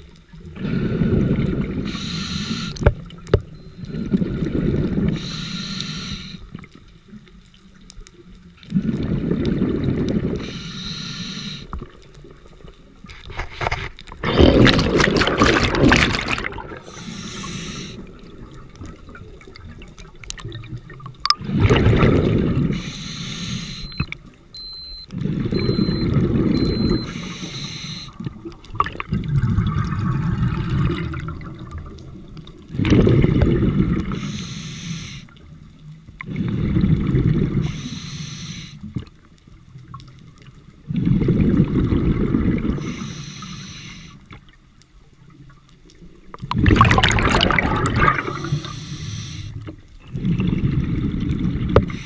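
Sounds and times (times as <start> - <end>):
exhaled bubbles rushing: 0.4 - 2.0, 8.6 - 10.5, 14.2 - 22.8, 25.2 - 27.0, 28.2 - 34.2, 36.2 - 37.7, 40.8 - 42.9, 46.1 - 49.0, 50.0 - 52.0
diver breathing through regulator: 0.6 - 2.8, 5.0 - 6.5, 10.2 - 11.8, 16.7 - 18.1, 22.7 - 24.0, 25.4 - 28.2, 34.1 - 35.4, 37.6 - 38.9, 42.7 - 44.3, 47.6 - 49.7
short high beeps: 23.7 - 27.6.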